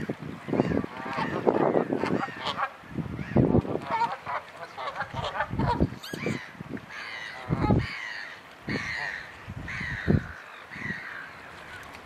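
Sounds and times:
bird harsh calls: 5.9s - 11.8s.

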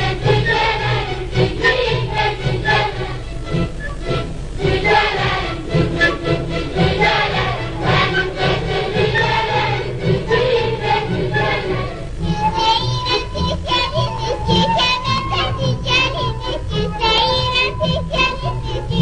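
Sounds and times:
children singing: 0.0s - 19.0s
instrumental accompaniment: 0.0s - 19.0s
girl singing: 6.8s - 19.0s.

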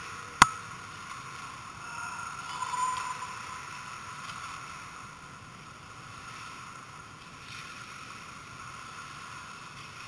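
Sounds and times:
faint skate and stick sounds: 0.0s - 10.0s
arena hum: 1.3s - 4.9s.

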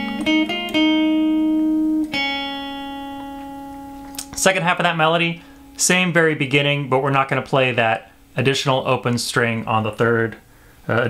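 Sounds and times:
electric guitar melody: 0.0s - 9.2s.

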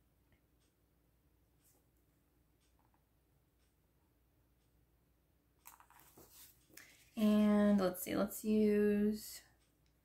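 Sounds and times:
paper and stickers rustling: 5.6s - 7.9s.

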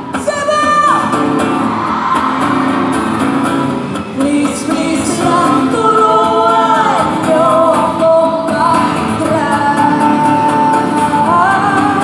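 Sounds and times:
pop-rock band with guitar: 0.0s - 12.0s
female singer holding long notes: 4.2s - 12.0s.

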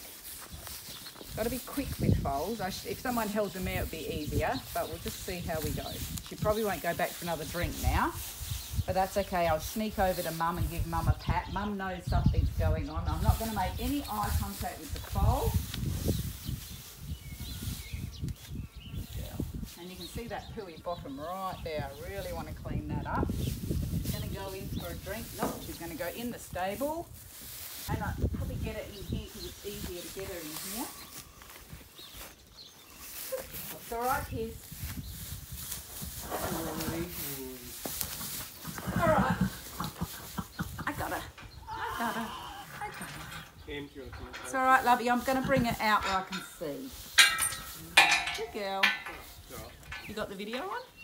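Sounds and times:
footsteps and hooves on straw: 0.0s - 41.4s, 44.2s - 51.0s
horse whinnying: 38.5s - 40.2s.

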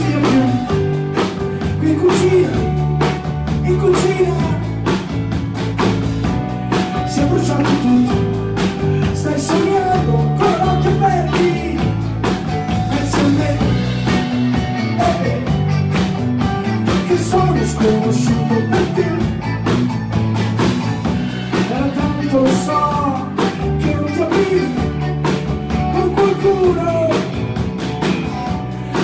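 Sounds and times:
man singing: 0.0s - 5.1s, 6.7s - 16.0s, 16.6s - 19.7s, 21.5s - 27.6s
bass and keyboards: 0.0s - 29.0s
drum kit beat: 0.0s - 29.0s
electric guitars: 0.0s - 29.0s.

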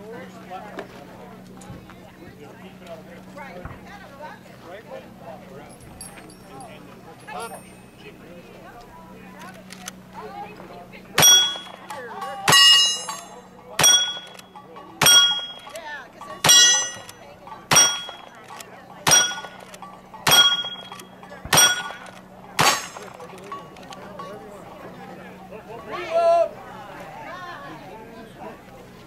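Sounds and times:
steel target ringing: 11.2s - 18.4s, 19.0s - 23.8s
gunshots: 20.3s - 23.2s.

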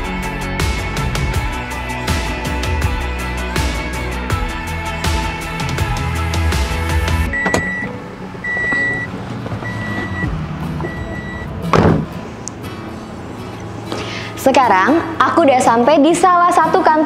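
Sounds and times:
background music: 0.0s - 17.0s
car warning chime beeps: 7.3s - 11.6s
car door clicking open: 7.4s - 10.2s
car door shutting with thud: 11.7s - 12.1s.

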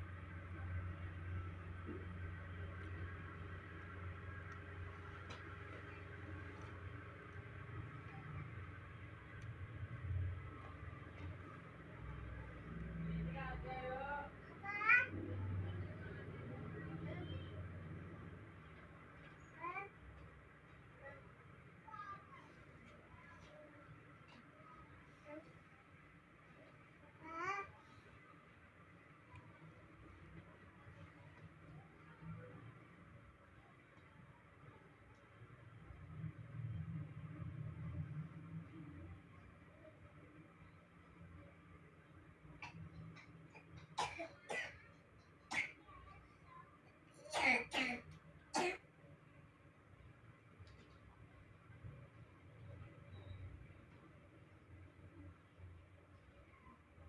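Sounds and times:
quiet room noise: 0.0s - 57.0s.

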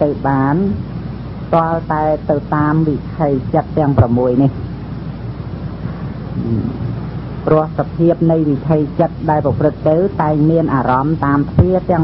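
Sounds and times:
low hum: 0.0s - 12.0s
recording hiss: 0.0s - 12.0s
faint brief vocal sound: 6.4s - 6.7s.

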